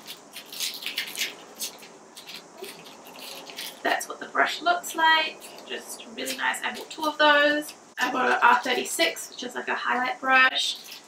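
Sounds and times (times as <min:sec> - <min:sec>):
plastic packaging crinkling: 0:00.0 - 0:04.0, 0:10.7 - 0:11.0.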